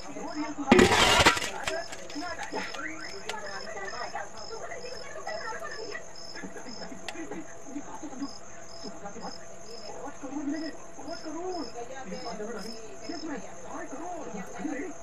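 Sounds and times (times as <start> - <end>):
crickets chirping: 0.0 - 15.0.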